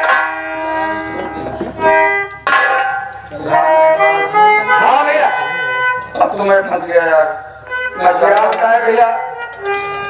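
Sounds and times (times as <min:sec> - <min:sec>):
sustained ringing instrument notes: 0:00.0 - 0:06.4, 0:08.8 - 0:10.0
sharp struck note: 0:02.4 - 0:03.7.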